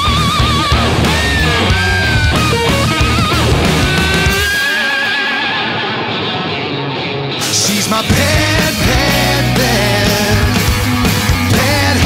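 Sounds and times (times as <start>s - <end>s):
hard rock band: 0.0s - 12.0s.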